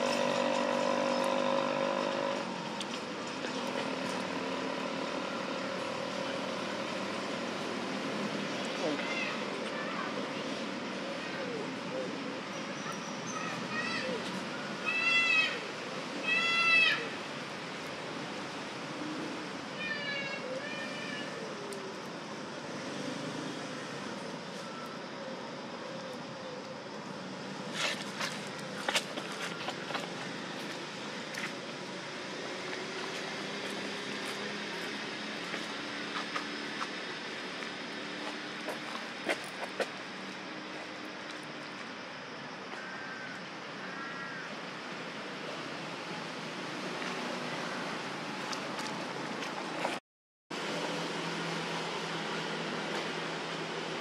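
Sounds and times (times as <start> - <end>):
outdoor background noise: 0.0 - 54.0.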